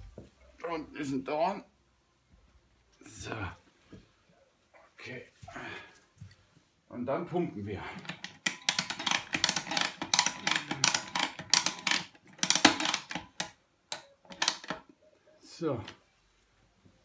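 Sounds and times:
pump ratchet clicking: 0:08.0 - 0:14.8.

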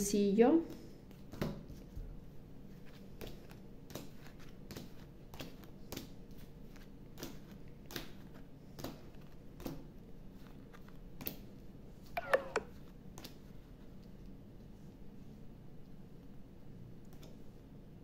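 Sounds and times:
playing cards being dealt: 0:12.0 - 0:13.5.

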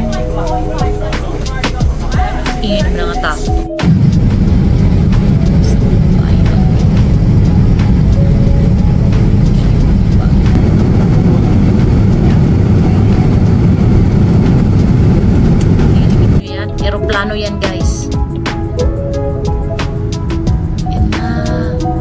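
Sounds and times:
jet engines roaring: 0:00.0 - 0:16.4
rushing air: 0:03.8 - 0:16.4.

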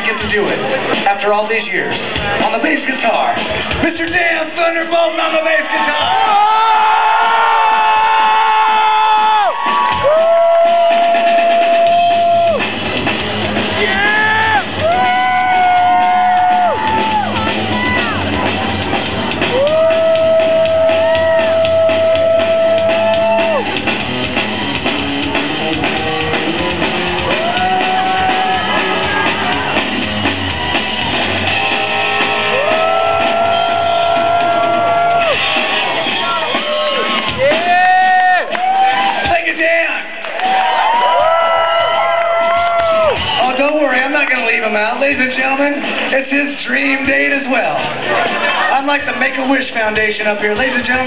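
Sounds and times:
crowd cheering: 0:00.0 - 0:49.6
steady rock drums: 0:00.0 - 0:51.0.

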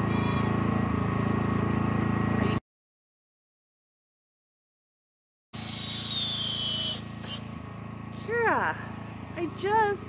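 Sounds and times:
power driver whining: 0:05.6 - 0:09.8
woman exclaiming: 0:08.3 - 0:08.8.

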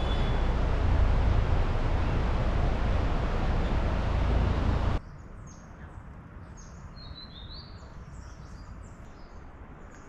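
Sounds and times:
loud rushing noise: 0:00.0 - 0:05.0
birds chirping: 0:00.0 - 0:10.0.

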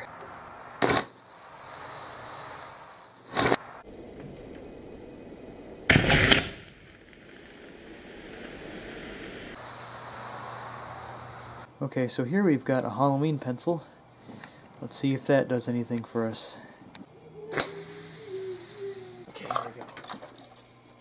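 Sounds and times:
electric arc bangs: 0:00.0 - 0:03.9, 0:05.8 - 0:11.7, 0:17.5 - 0:19.3
steady low hiss: 0:00.0 - 0:05.9, 0:06.9 - 0:21.0.

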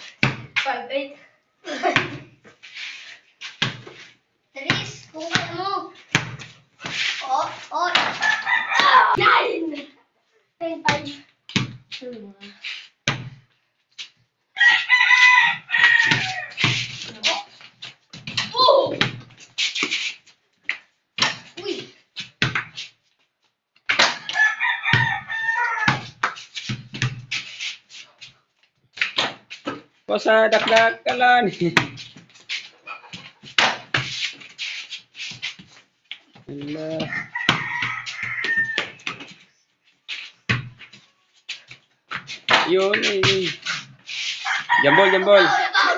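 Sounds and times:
ball thudding on concrete: 0:00.2 - 0:00.7, 0:01.8 - 0:02.3, 0:04.7 - 0:07.0, 0:07.8 - 0:09.3, 0:10.9 - 0:12.0, 0:13.0 - 0:13.5, 0:15.2 - 0:17.4, 0:18.1 - 0:19.9, 0:20.6 - 0:21.6, 0:22.3 - 0:22.8, 0:23.8 - 0:27.5, 0:28.9 - 0:29.9, 0:30.5 - 0:32.3, 0:33.1 - 0:34.5, 0:36.5 - 0:39.4, 0:40.5 - 0:44.0
rooster crowing: 0:08.2 - 0:09.2, 0:14.6 - 0:16.6, 0:24.2 - 0:26.1, 0:37.0 - 0:39.0, 0:44.4 - 0:45.9.

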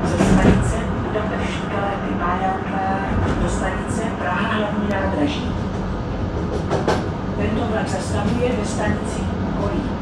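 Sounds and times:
train coach rumbling: 0:00.0 - 0:10.0
train wheels clacking: 0:04.9 - 0:07.2.

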